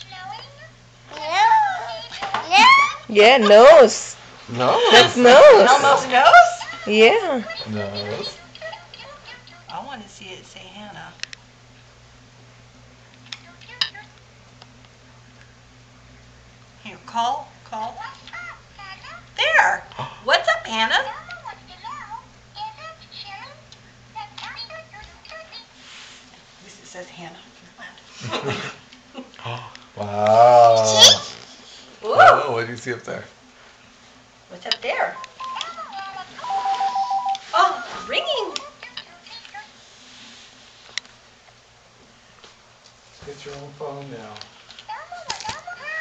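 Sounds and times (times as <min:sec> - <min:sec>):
warbling two-tone toy phone ring: 0:36.4 - 0:37.4
short electronic tones: 0:36.4 - 0:38.2.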